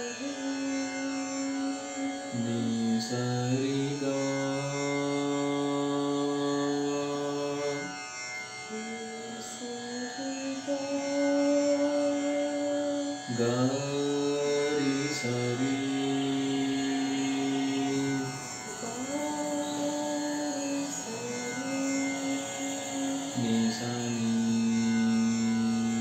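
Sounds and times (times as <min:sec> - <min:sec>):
voices singing a devotional chant: 0:08.7 - 0:26.0.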